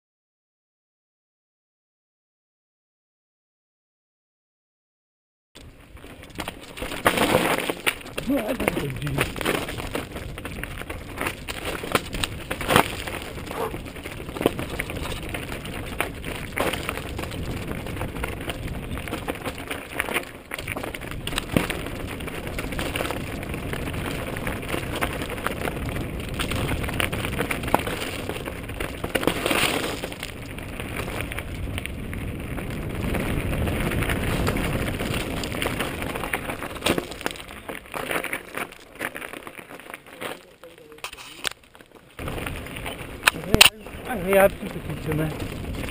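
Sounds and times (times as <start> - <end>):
bike rattling over bumps: 5.6 - 45.9
bike tyres crunching on stones: 5.6 - 45.9.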